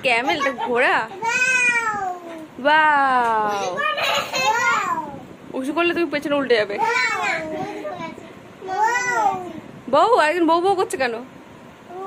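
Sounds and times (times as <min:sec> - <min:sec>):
young children calling and chattering: 0:00.0 - 0:10.0, 0:11.8 - 0:12.0.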